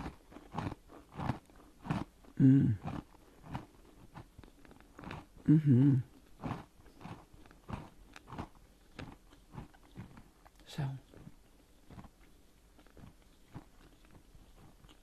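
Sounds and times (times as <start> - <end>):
chewing crisp cookie: 0.0 - 15.0.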